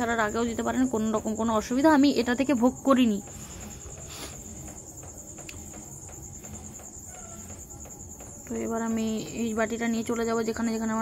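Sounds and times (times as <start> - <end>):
crickets chirping: 0.0 - 11.0
speech: 8.4 - 11.0.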